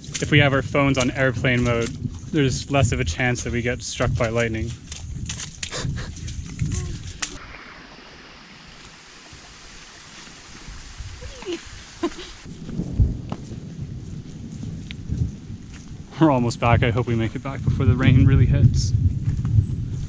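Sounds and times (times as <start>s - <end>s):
footsteps on trail: 0.0s - 7.4s, 12.0s - 16.2s, 19.0s - 20.0s
low rumbling: 0.0s - 8.3s, 10.4s - 20.0s
rain on foliage: 0.0s - 17.6s.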